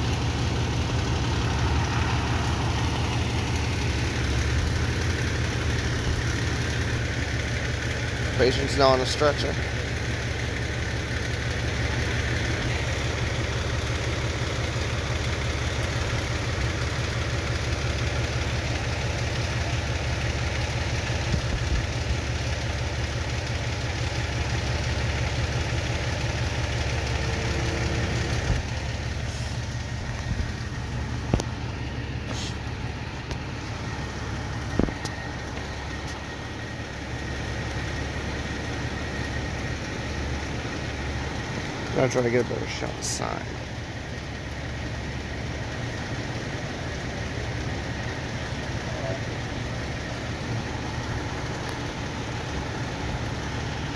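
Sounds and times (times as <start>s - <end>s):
fire engine idling: 0.0s - 53.9s.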